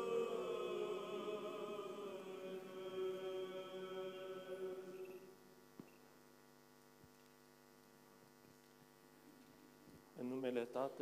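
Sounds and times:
choir chanting: 0.0s - 5.4s
faint electrical hum: 0.0s - 11.0s.

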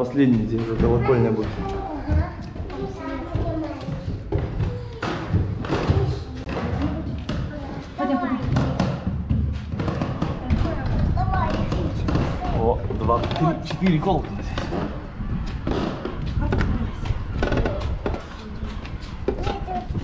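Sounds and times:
footsteps on stairs: 0.0s - 20.0s.

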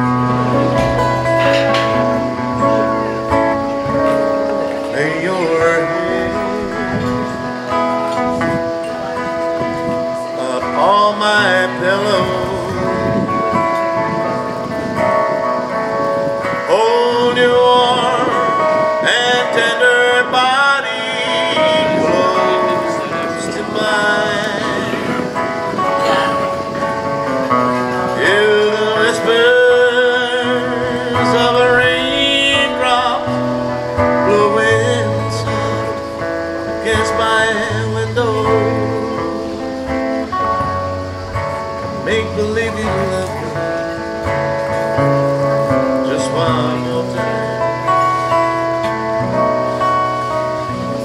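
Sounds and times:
man singing: 0.0s - 15.8s, 16.4s - 40.8s, 41.6s - 49.6s
acoustic guitar strumming: 0.0s - 51.0s.

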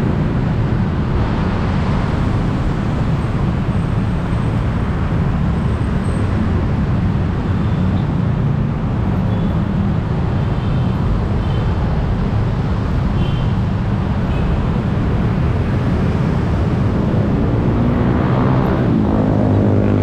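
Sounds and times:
city traffic rumble: 0.0s - 20.0s.

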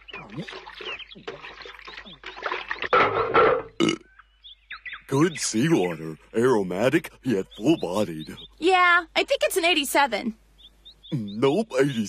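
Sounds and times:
cartoon burp: 3.6s - 4.2s.

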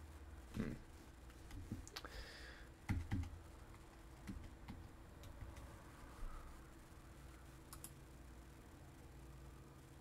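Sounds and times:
faint computer keyboard keystrokes: 2.8s - 5.7s, 7.7s - 8.0s.

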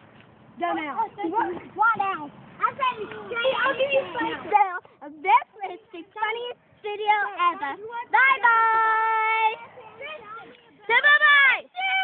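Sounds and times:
girl speaking: 1.3s - 4.8s.

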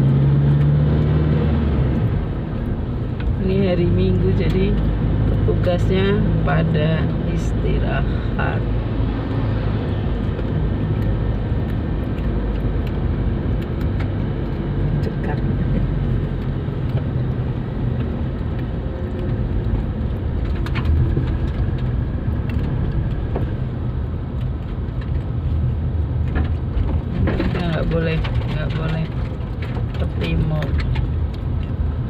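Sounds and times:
car engine and tyre rumble: 0.0s - 32.0s.

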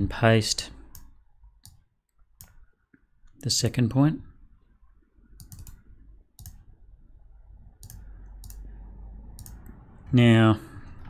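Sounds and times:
computer mouse clicking: 0.9s - 1.8s, 2.4s - 2.6s, 5.4s - 6.7s, 7.8s - 8.7s, 9.4s - 9.8s.

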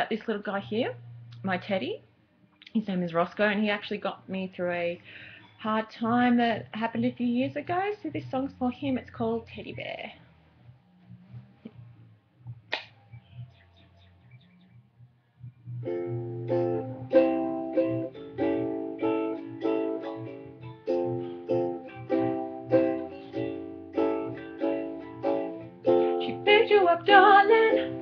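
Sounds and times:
sharp click: 12.7s - 13.0s
plucked string instrument chords: 15.4s - 28.0s.

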